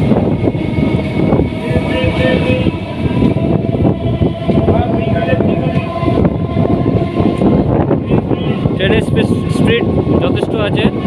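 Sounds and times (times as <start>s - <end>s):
steady train whine: 0.0s - 11.0s
train wheels rumbling on rails: 0.0s - 11.0s.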